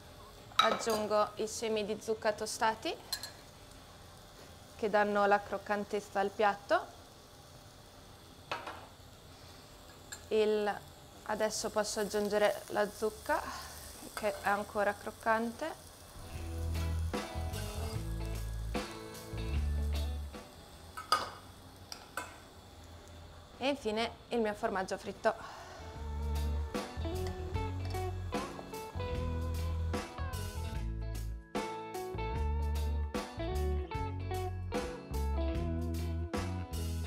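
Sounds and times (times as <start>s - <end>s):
metal spoon clinking on pot: 3.1s - 3.4s
background music with low bass: 16.2s - 20.4s, 26.0s - 37.0s.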